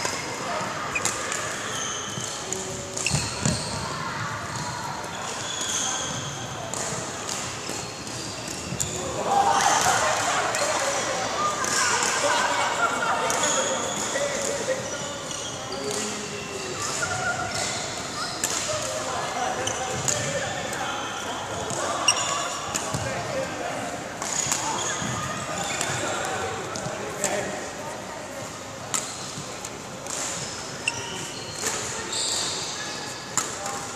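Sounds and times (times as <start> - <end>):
shoes squeaking on court floor: 0.0 - 9.3, 12.8 - 33.9.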